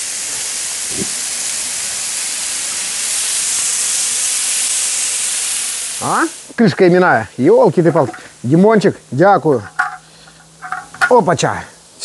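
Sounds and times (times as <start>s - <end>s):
potatoes sizzling in a pan: 0.0s - 12.0s.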